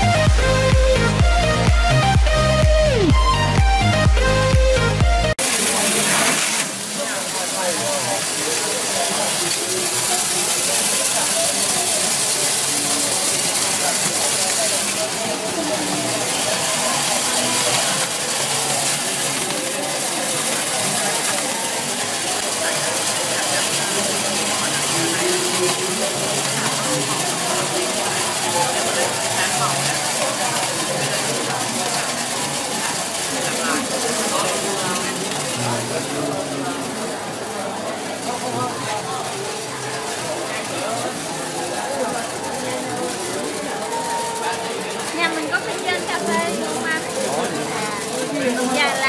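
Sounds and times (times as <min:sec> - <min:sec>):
chatter of voices: 0:00.0 - 0:49.0
hissing sorting machine: 0:00.0 - 0:49.0.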